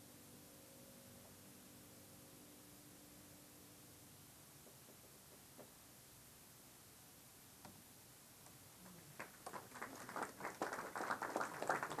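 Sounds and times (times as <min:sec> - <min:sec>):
audience applause: 0:08.9 - 0:12.0.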